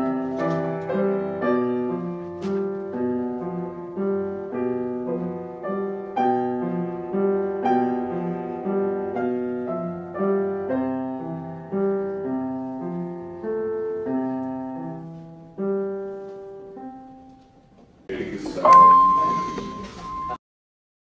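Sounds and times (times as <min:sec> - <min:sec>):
slow piano piece: 0:00.0 - 0:20.4.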